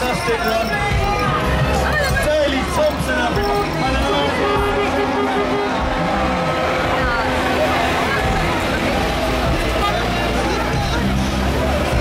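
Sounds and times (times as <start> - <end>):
crowd voices: 0.0 - 12.0
music from loudspeakers: 0.0 - 12.0
vehicles driving past: 0.0 - 12.0.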